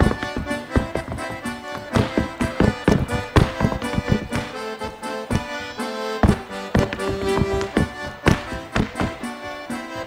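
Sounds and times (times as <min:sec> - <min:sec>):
accordion music: 0:00.0 - 0:10.0
boots tapping on wooden floor: 0:00.0 - 0:10.0.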